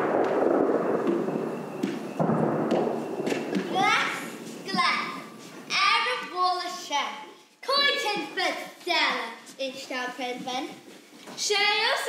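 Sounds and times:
child calling out: 0:03.7 - 0:06.1.

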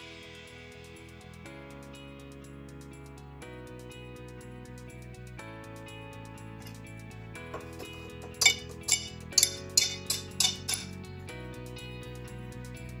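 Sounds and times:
guitar music: 0:07.6 - 0:11.1
ceramic tile snapping clinks: 0:08.3 - 0:11.0.

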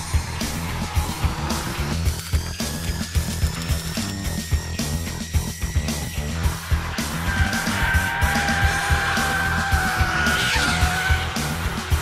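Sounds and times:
rock music: 0:00.0 - 0:12.0
car tyres squealing: 0:06.5 - 0:12.0.

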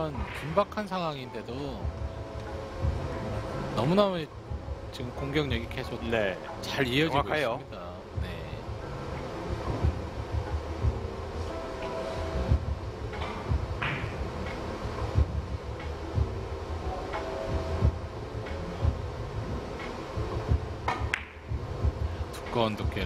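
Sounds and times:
low hum of billiards hall: 0:00.0 - 0:23.0
cue tip striking ball: 0:20.9 - 0:21.5.

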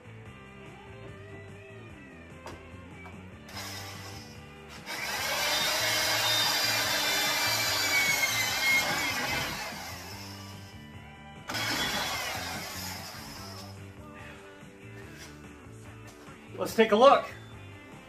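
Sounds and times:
rock music: 0:00.0 - 0:18.0
power drill whining: 0:03.5 - 0:10.8, 0:11.5 - 0:13.9.

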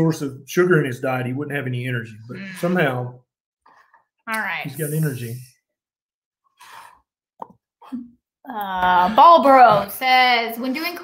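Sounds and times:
person speaking: 0:01.4 - 0:03.1, 0:04.3 - 0:05.5
soft breath: 0:06.5 - 0:07.1.

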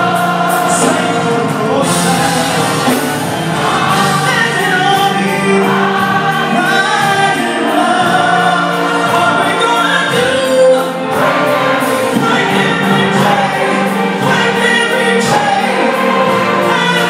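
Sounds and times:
gospel choir singing: 0:00.0 - 0:17.0
steady beat: 0:00.0 - 0:17.0.

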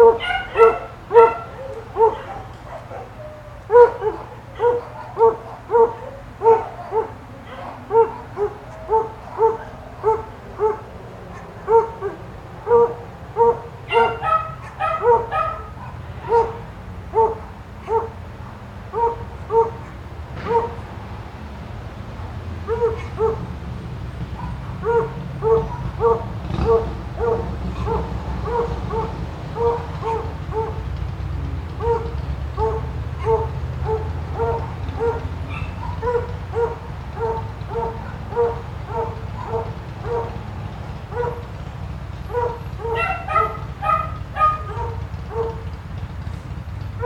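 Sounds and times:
dog barking: 0:00.0 - 0:20.9, 0:22.6 - 0:23.6, 0:24.3 - 0:31.0, 0:31.7 - 0:45.8.

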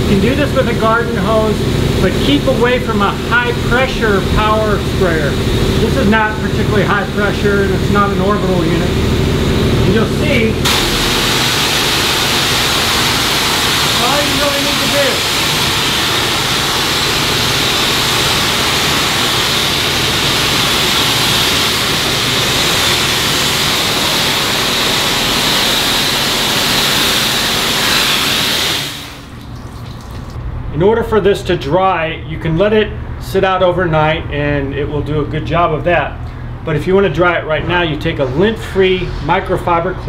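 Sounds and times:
water spray hissing on fabric: 0:10.7 - 0:30.4.

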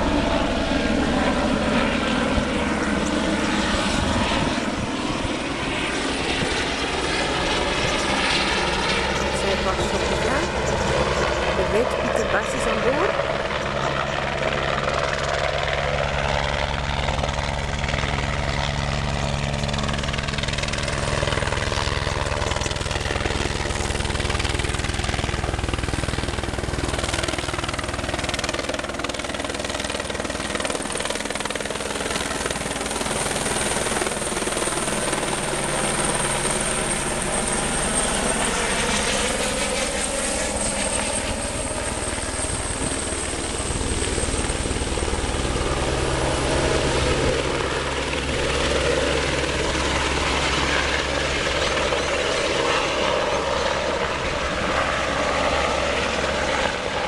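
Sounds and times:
helicopter rotor chop: 0:00.0 - 0:57.0
high turbine whine: 0:00.0 - 0:57.0.

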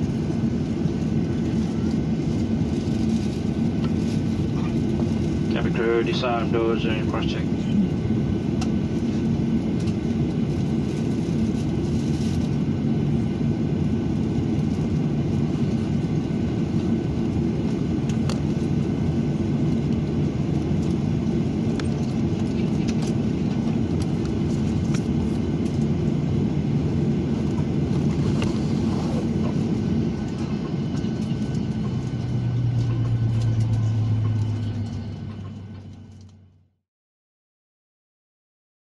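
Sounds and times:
aircraft cabin rumble and hum: 0:00.0 - 0:36.8
deeper hum: 0:00.0 - 0:36.8
steady low tones: 0:03.5 - 0:08.6, 0:23.2 - 0:36.8.

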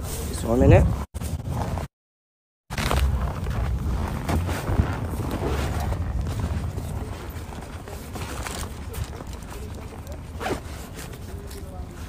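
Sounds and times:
steady low rumble: 0:02.7 - 0:10.4
zipper-like rasp: 0:09.5 - 0:11.5.

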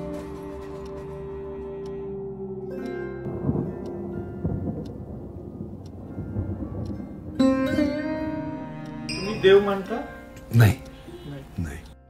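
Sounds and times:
thunder rumbling: 0:03.2 - 0:09.1.

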